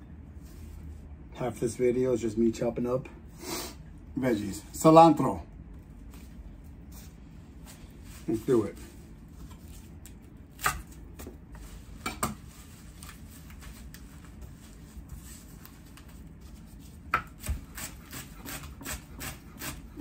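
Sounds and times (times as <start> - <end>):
knife chopping on wooden board: 10.6 - 11.4, 17.1 - 20.0.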